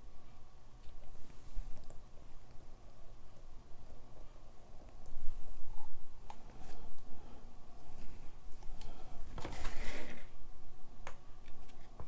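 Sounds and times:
canvas panel scraping on table: 9.4s - 10.3s.

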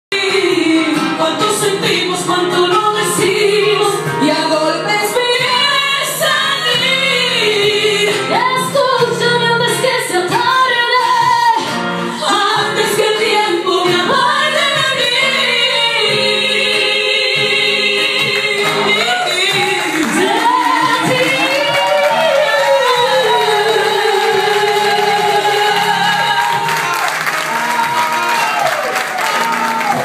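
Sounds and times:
acoustic guitar: 0.1s - 30.0s
women singing into microphones: 0.2s - 26.9s.

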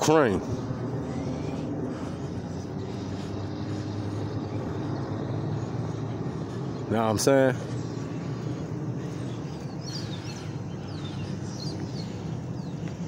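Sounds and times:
street background noise: 0.0s - 13.0s
vehicle engine humming: 0.0s - 13.0s.

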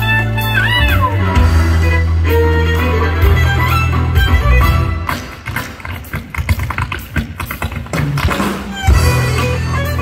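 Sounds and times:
live band music: 0.0s - 10.0s
sharp percussive taps: 5.0s - 8.9s.

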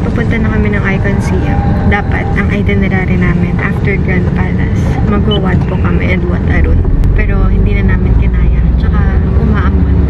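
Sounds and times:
car cabin rumble: 0.0s - 10.0s
people talking: 0.0s - 10.0s.

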